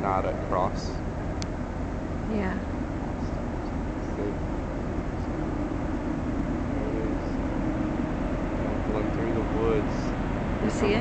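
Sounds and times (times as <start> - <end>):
faint held drone: 0.0 - 11.0
train rumbling: 0.0 - 11.0.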